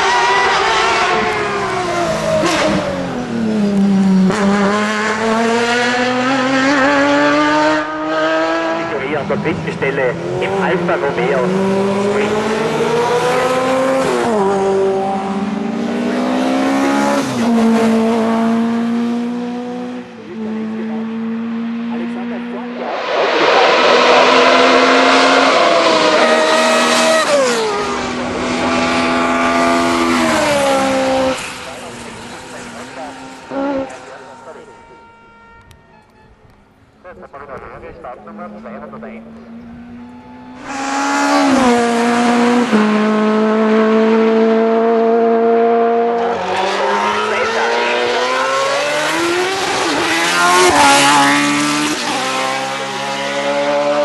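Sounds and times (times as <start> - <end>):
racing car engines at full throttle: 0.0 - 35.8, 36.4 - 54.0.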